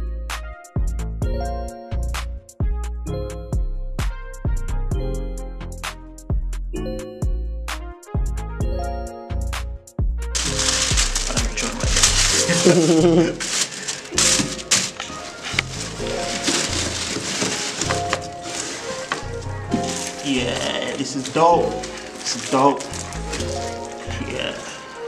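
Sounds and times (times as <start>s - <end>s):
background music: 0.0s - 25.0s
tissue paper rustling and crinkling: 10.4s - 25.0s.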